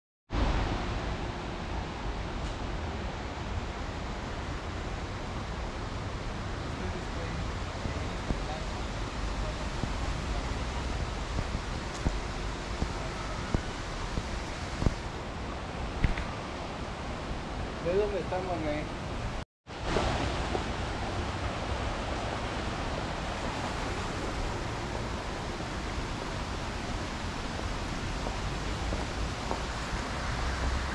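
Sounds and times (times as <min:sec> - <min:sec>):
rushing outdoor background noise: 0:00.3 - 0:30.9.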